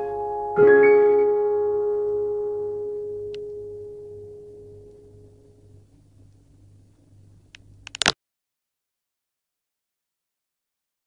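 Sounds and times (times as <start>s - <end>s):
piano chord ringing: 0.0s - 5.8s.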